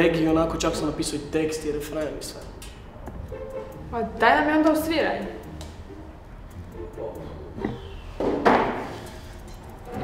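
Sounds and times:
acoustic guitar handling knocks: 0:08.2 - 0:08.9.

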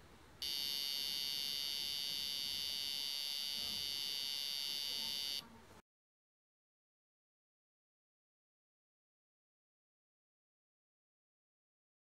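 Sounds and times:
high-pitched buzzer tone: 0:00.4 - 0:05.5.

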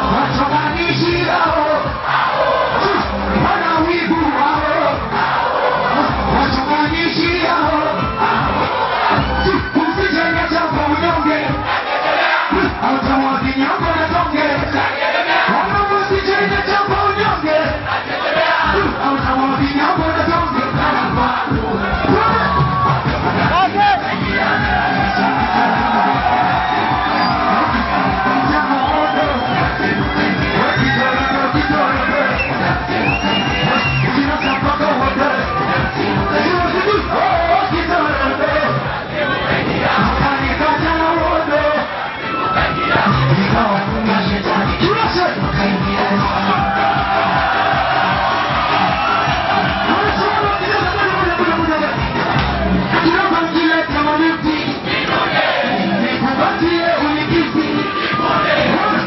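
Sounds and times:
man speaking into microphone: 0:00.0 - 0:02.0, 0:02.8 - 0:05.0, 0:05.9 - 0:08.2, 0:09.4 - 0:11.6, 0:12.5 - 0:14.8, 0:15.5 - 0:17.9, 0:18.8 - 0:20.8, 0:23.5 - 0:24.4, 0:27.4 - 0:29.7, 0:30.6 - 0:32.4, 0:33.6 - 0:35.6, 0:40.1 - 0:41.9, 0:44.7 - 0:46.3, 0:49.8 - 0:52.1, 0:52.9 - 0:54.7, 0:56.0 - 0:58.0
steady bass beat: 0:00.0 - 0:11.7, 0:12.5 - 0:14.9, 0:15.5 - 0:41.8, 0:42.8 - 0:54.8
crowd shouting and singing: 0:00.0 - 0:59.0
loud amplified music: 0:00.0 - 0:59.0.

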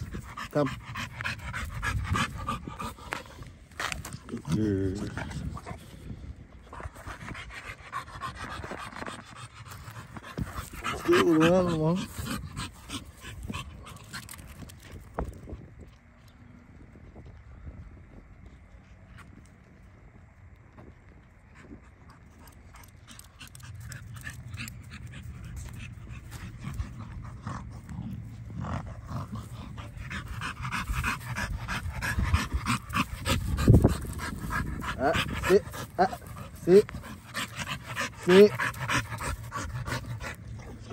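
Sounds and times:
dog panting hard: 0:00.0 - 0:14.7, 0:21.6 - 0:40.9.

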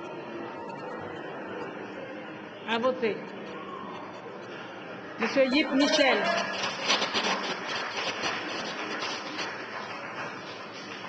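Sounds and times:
room noise of large chamber: 0:00.0 - 0:11.0.

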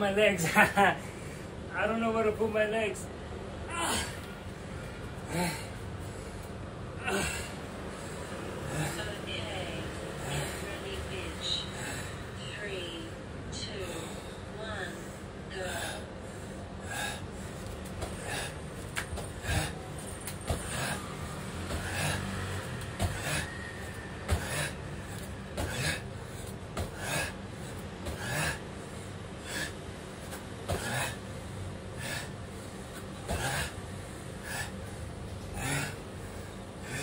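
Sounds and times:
man gasping for breath: 0:15.0 - 0:29.8, 0:30.7 - 0:37.0
bare feet landing on mat: 0:23.0 - 0:23.4, 0:25.5 - 0:26.0, 0:26.7 - 0:27.1.

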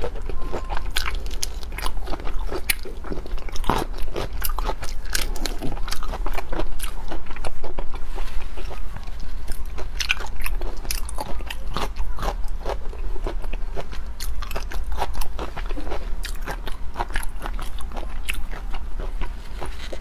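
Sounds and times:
close-miked chewing: 0:00.0 - 0:20.0.

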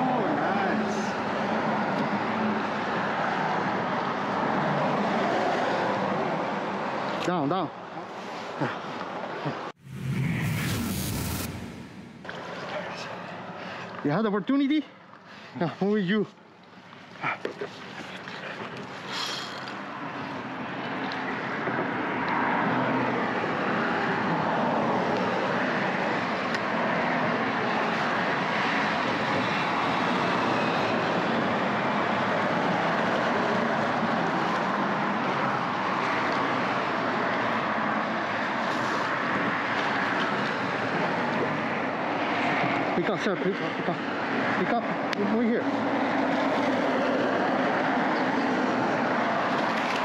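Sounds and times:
road traffic rushing: 0:00.0 - 0:14.1, 0:18.9 - 0:50.0.

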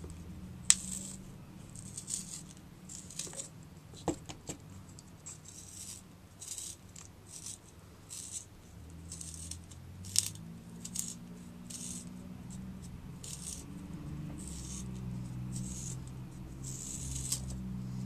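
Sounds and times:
pencil sharpener scraping: 0:00.7 - 0:03.5, 0:04.9 - 0:08.5, 0:09.1 - 0:18.0.

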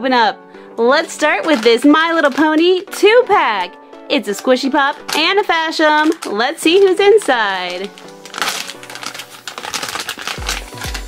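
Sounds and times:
foil packet crinkling: 0:00.9 - 0:11.0
background music with bass beat: 0:10.4 - 0:11.0.

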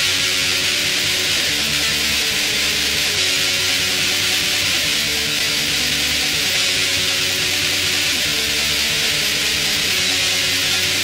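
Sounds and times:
black metal music: 0:00.0 - 0:11.0
distorted electric guitar: 0:00.0 - 0:11.0.

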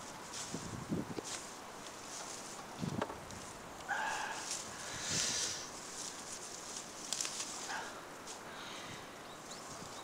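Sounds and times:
leaves and netting rustling: 0:00.0 - 0:10.0.

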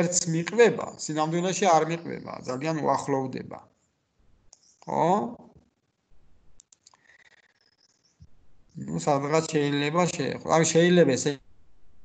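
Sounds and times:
man speaking: 0:00.0 - 0:03.6, 0:04.9 - 0:05.5, 0:08.8 - 0:11.4.

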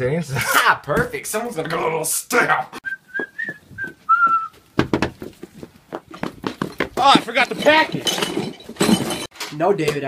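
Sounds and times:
person whistling a note: 0:02.8 - 0:04.6
knocks and thumps: 0:04.7 - 0:09.5.

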